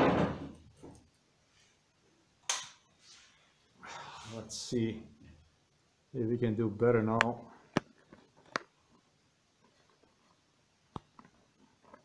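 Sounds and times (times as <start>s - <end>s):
sharp click: 2.4s - 2.8s.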